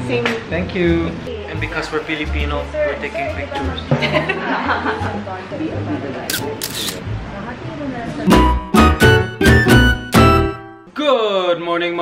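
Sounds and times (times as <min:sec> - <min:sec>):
camera shutter clicking: 0:06.3 - 0:07.0.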